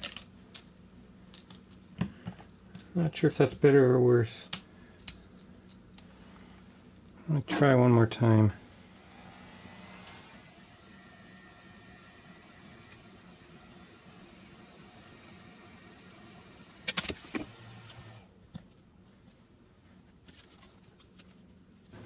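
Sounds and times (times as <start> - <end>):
hot-air gun blowing hum: 6.0 - 18.4.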